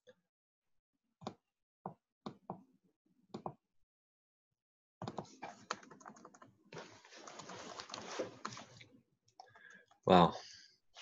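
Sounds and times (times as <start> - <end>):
keyboard and mouse clicking: 5.0 - 6.5.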